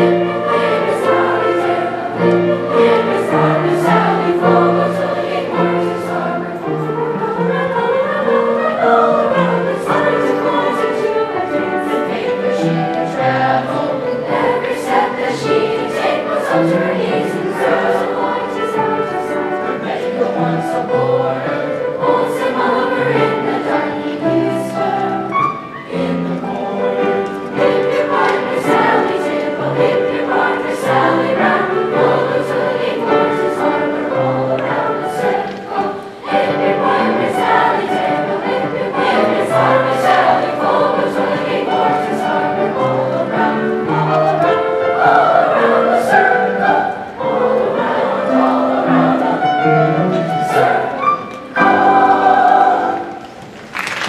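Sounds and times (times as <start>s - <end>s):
children's choir singing: 0.0s - 54.0s
piano accompaniment: 0.0s - 54.0s.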